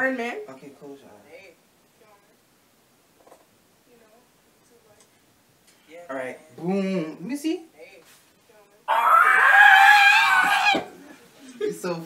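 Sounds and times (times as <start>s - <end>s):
person screaming: 8.9s - 10.9s.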